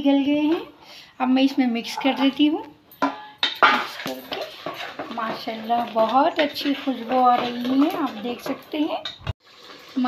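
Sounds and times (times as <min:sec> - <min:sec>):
metal ladle knocking on pot: 0:03.0 - 0:09.4.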